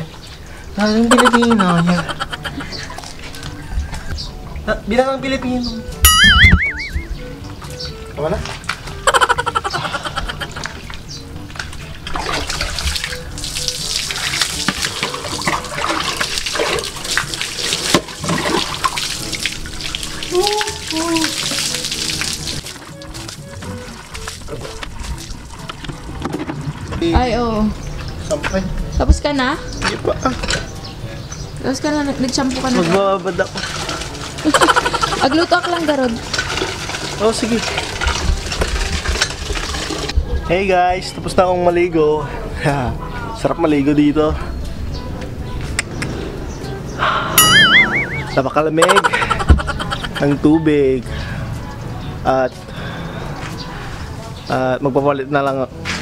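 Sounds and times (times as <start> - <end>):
background music: 0.0 - 40.2, 41.0 - 56.0
water splashing onto concrete: 10.4 - 25.9, 31.6 - 40.2.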